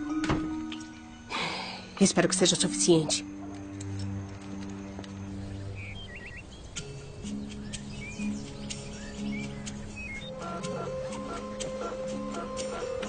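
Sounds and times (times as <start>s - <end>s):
soft film music: 0.0s - 13.0s
bird chirps: 5.3s - 13.0s.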